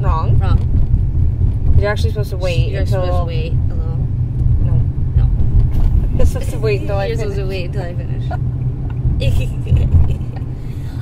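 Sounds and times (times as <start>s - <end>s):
car road and engine rumble: 0.0s - 11.0s
heavy low thump: 0.1s - 7.1s, 8.0s - 10.6s.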